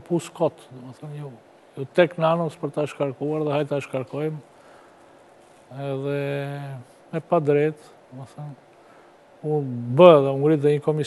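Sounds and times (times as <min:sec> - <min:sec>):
man speaking: 0:00.0 - 0:04.5, 0:05.7 - 0:08.6, 0:09.4 - 0:11.0.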